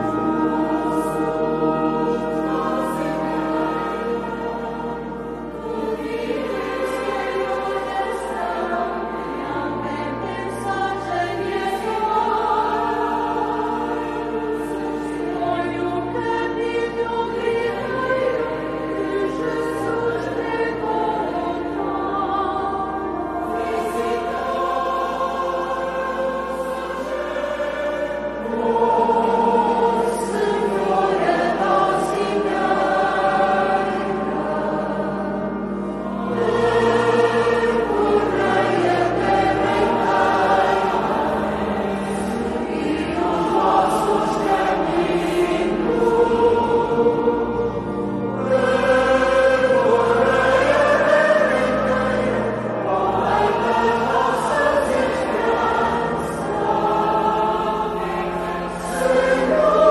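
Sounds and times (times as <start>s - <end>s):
choir singing sacred music: 0.0s - 59.9s.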